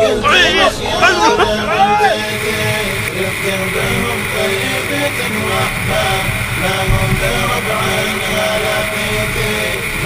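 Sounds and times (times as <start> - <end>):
car engine: 0.0 - 10.0
wind noise: 5.1 - 10.0.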